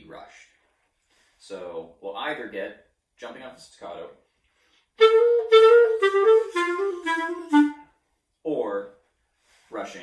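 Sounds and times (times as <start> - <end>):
clarinet playing staccato notes: 5.0 - 8.0.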